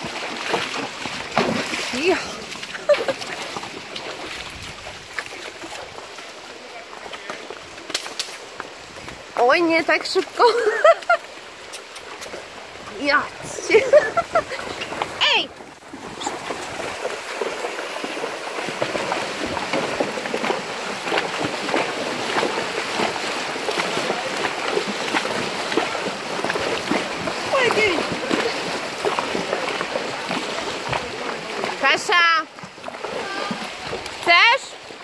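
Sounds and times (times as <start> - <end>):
splashing through shallow water: 0.0 - 35.0.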